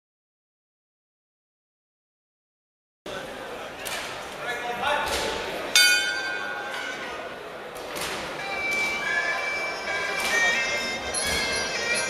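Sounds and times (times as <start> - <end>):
boxing bell ringing: 5.8 - 6.9, 8.4 - 12.0.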